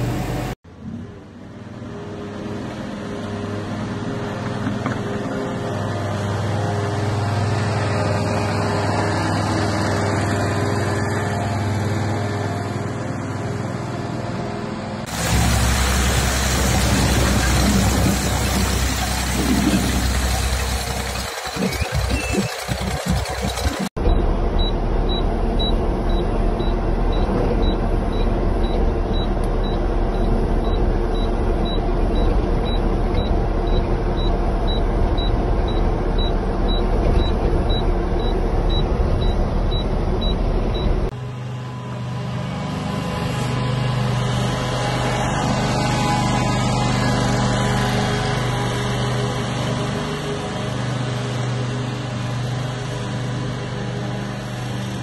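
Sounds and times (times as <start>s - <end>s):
tractor engine running: 0.0s - 0.6s, 15.0s - 55.0s
engine hum with low drone: 0.0s - 55.0s.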